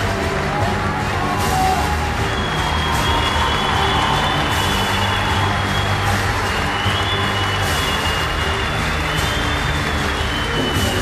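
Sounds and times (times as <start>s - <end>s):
audience cheering and applauding: 0.0s - 11.0s
loud music with steady bass: 0.0s - 11.0s.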